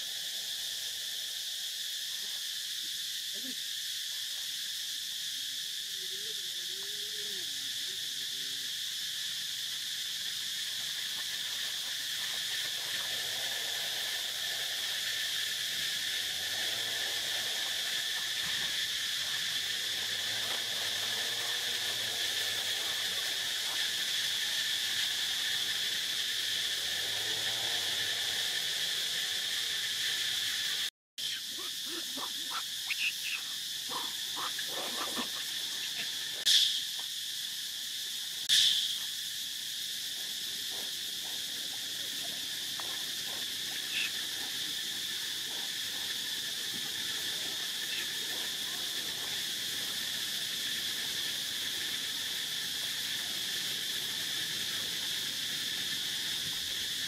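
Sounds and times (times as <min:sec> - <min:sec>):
insects buzzing: 0:00.0 - 0:57.0.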